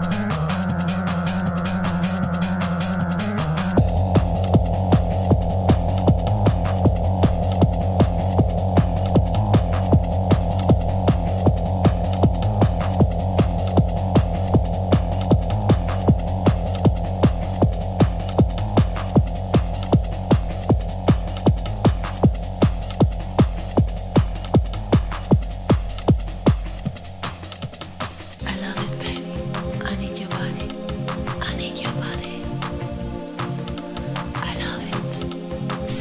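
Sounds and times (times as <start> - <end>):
trance kick drum: 0.0 - 29.8
low bass drone: 0.0 - 36.0.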